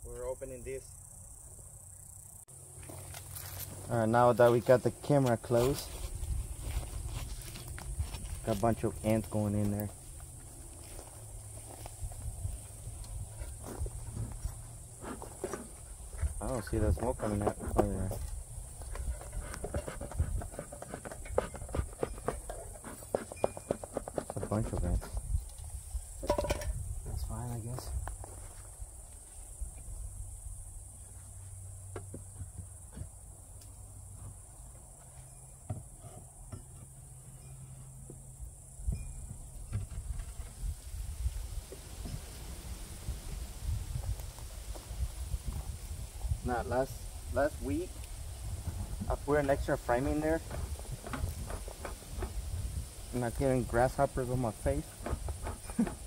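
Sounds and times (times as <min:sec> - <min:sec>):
high insect chirr: 0:00.0 - 0:56.0
knocks and scrapes on wood: 0:13.4 - 0:25.3, 0:35.7 - 0:36.9, 0:50.0 - 0:52.6, 0:54.7 - 0:56.0.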